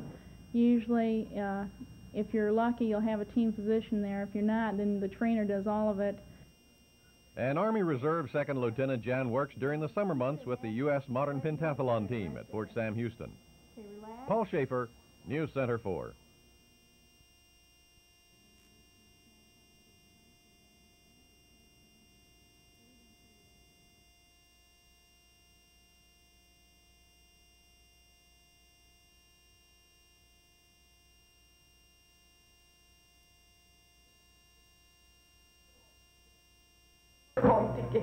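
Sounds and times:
faint electrical hum and hiss: 0.0 - 38.0.

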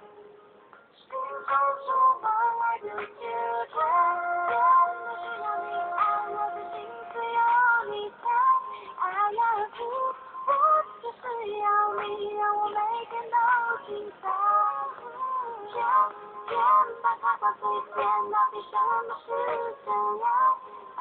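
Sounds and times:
pop song with singing: 0.0 - 21.0.

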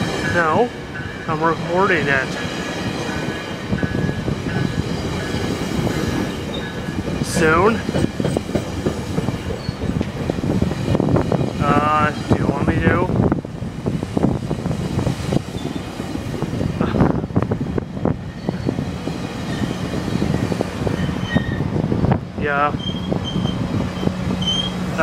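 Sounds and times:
train coaches rumbling past: 0.0 - 25.0.

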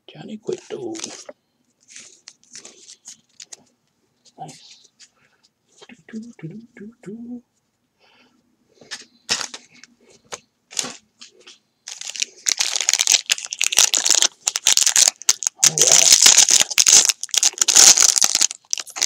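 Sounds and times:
foil wrapper crinkling: 11.9 - 19.0.

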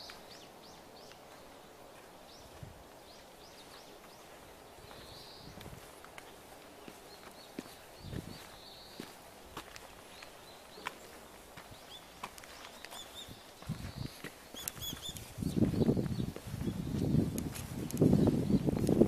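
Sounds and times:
crunching footsteps: 0.0 - 19.0
small birds chirping: 0.0 - 19.0.

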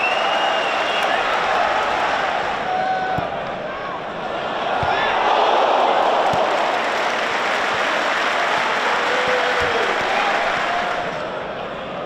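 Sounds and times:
crowd cheering and applauding: 0.0 - 3.2, 4.5 - 11.5.

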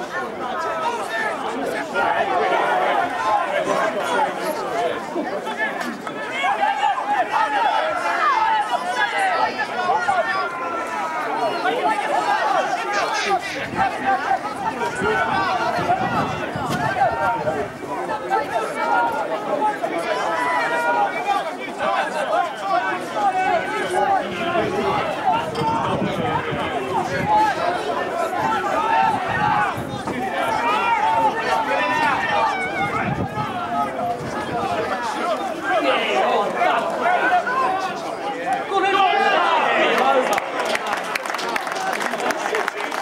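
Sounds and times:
players shouting: 0.0 - 43.0
voices calling out and chattering: 0.0 - 43.0.

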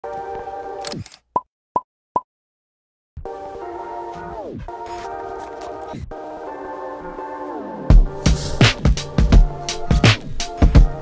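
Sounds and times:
background music: 0.0 - 1.0, 3.2 - 11.0.

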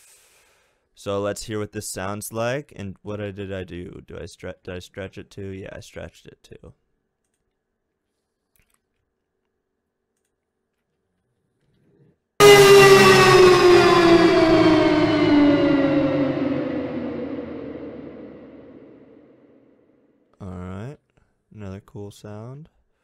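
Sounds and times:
tonal downward pitch glide effect: 12.4 - 19.4.

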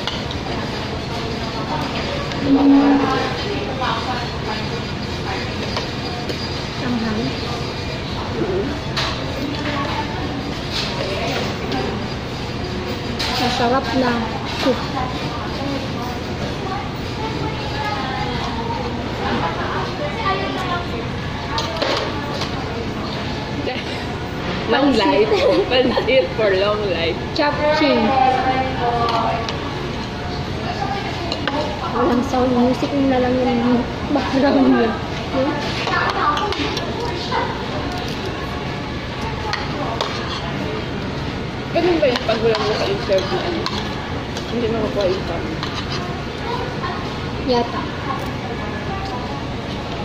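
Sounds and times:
distant people talking: 0.0 - 50.0
restaurant hum: 0.0 - 50.0.

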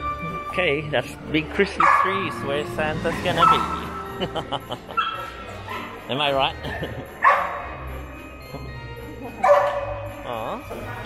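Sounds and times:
dog barking: 1.8 - 2.3, 5.0 - 6.0, 7.2 - 7.7, 9.4 - 10.0.

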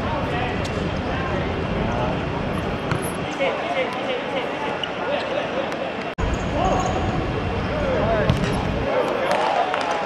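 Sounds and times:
football kicks thudding: 8.3 - 8.7.

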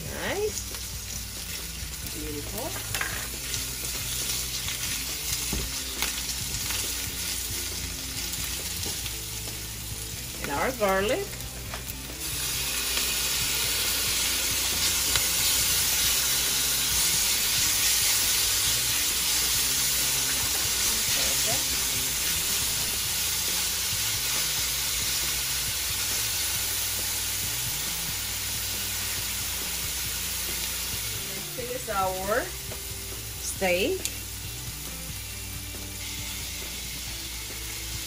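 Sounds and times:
onions sizzling in a skillet: 0.0 - 38.0.

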